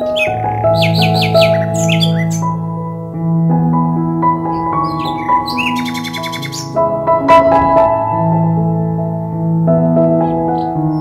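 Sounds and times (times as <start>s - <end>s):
small bird chirping: 0.0s - 2.6s, 4.5s - 6.8s
slow piano music: 0.0s - 11.0s.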